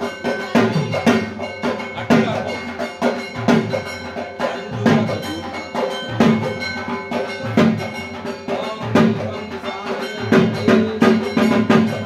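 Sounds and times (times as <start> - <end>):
drum beating steady rhythm: 0.0 - 12.0
metal percussion clanging: 0.0 - 12.0.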